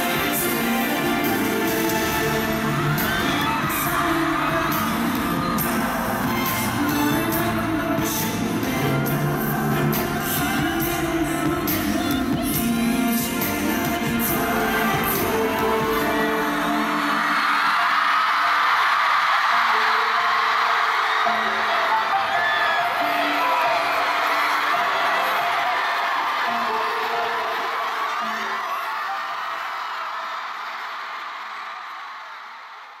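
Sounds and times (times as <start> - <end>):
pop song: 0.0 - 31.5
crowd screaming and cheering: 0.0 - 33.0.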